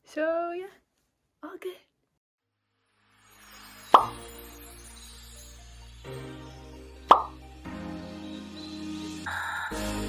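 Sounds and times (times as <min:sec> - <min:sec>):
light background music: 0:02.9 - 0:10.0
pop sound effect: 0:03.9 - 0:04.2, 0:07.1 - 0:07.4.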